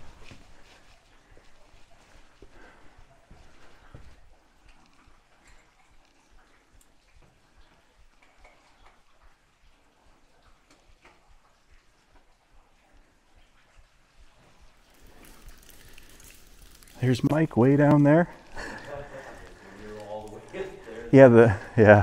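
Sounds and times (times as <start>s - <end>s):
small ticks: 3.6s - 21.1s.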